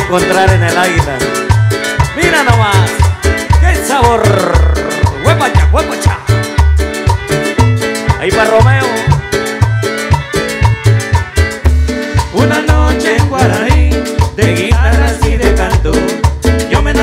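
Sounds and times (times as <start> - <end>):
latin dance band playing: 0.0 - 17.0.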